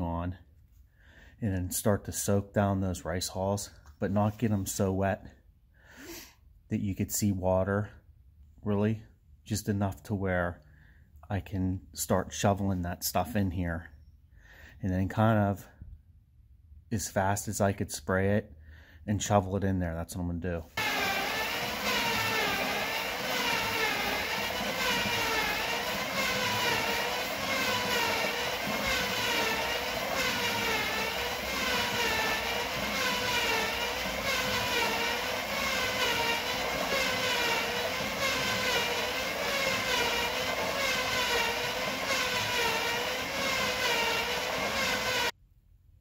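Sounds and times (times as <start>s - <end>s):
electric motor whine: 20.8s - 45.3s.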